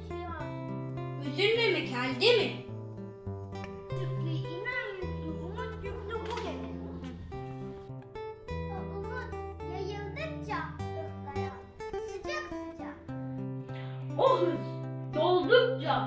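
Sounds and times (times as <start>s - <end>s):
plucked string background music: 0.0s - 16.0s
child reciting poetry: 4.0s - 7.2s, 8.7s - 13.1s
loud child's voice: 8.8s - 13.0s.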